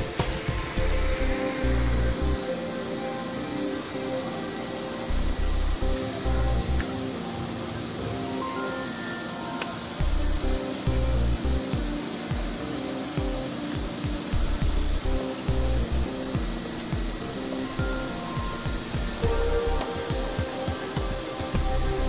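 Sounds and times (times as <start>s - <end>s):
music with thudding bass beat: 10.0s - 12.6s, 13.2s - 17.2s, 17.8s - 22.0s.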